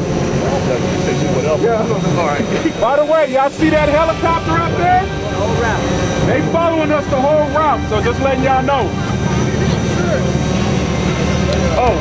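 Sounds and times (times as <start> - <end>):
crowd chatter: 0.0 - 12.0
low engine rumble: 0.0 - 12.0.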